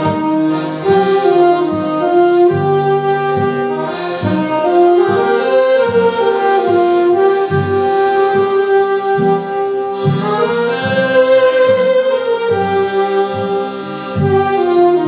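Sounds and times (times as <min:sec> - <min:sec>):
accordion: 0:00.0 - 0:15.0
acoustic guitar: 0:00.0 - 0:15.0
saxophone slow melody: 0:00.0 - 0:15.0.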